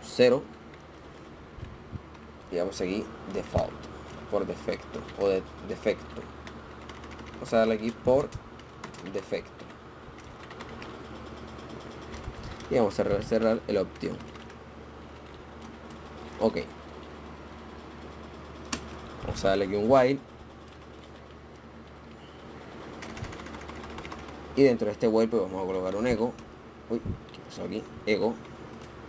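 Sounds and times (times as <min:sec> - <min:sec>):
low steady hum: 0:00.0 - 0:29.0
faint keyboard typing: 0:00.2 - 0:26.5, 0:27.2 - 0:29.0
keyboard keys clicking: 0:06.1 - 0:14.6, 0:18.2 - 0:22.0, 0:23.0 - 0:24.4.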